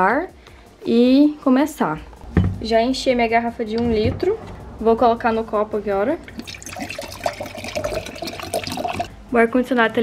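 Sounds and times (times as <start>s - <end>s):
water pouring into a glass: 6.4s - 9.1s.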